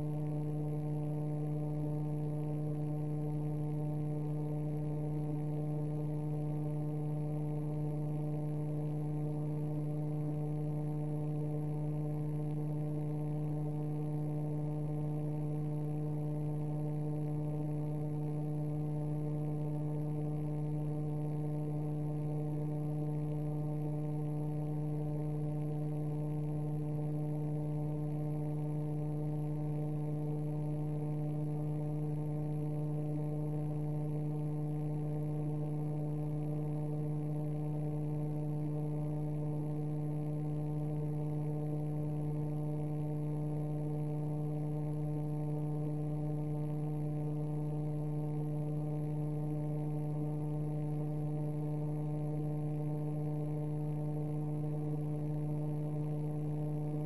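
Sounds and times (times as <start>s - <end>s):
low electrical hum: 0.0s - 57.0s.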